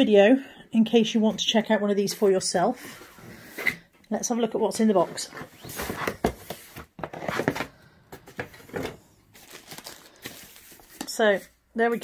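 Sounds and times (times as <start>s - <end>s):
cardboard scraping and rustling: 5.2s - 11.1s.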